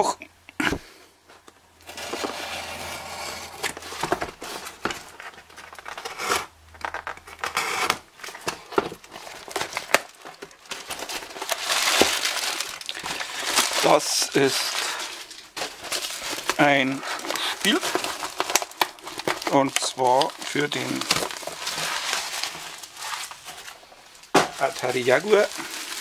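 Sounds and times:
packing tape tearing: 0:01.8 - 0:26.0
paper rustling and crumpling: 0:01.8 - 0:26.0.

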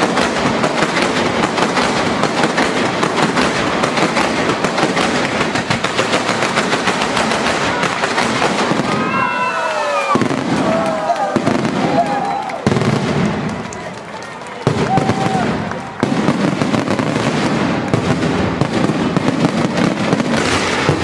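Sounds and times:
fireworks crackling: 0:00.0 - 0:21.0.

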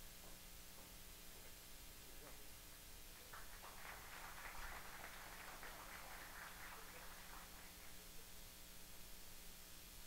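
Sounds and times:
audience applauding faintly: 0:03.2 - 0:08.4.

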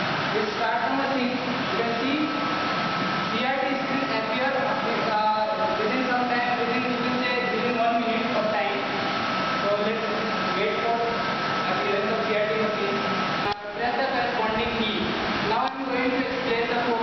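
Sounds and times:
steady whirring hum: 0:00.0 - 0:17.0.

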